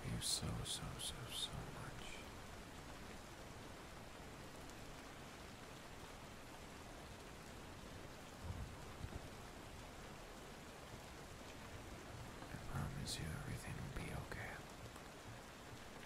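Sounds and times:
steady rain falling: 0.0 - 16.0.

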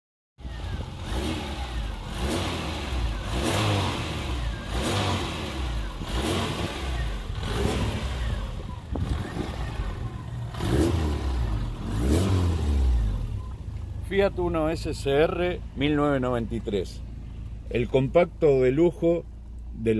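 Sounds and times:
car engine revving: 0.4 - 18.1.

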